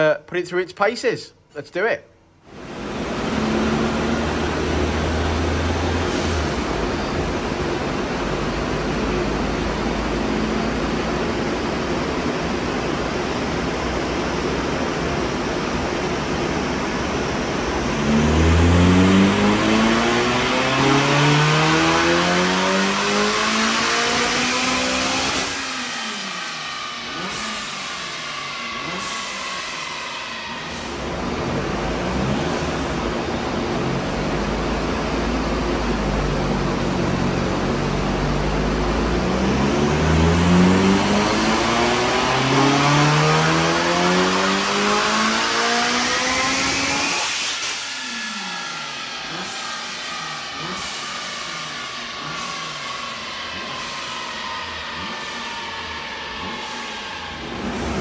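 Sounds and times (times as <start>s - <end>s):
car engine revving on a dyno: 2.4s - 58.0s.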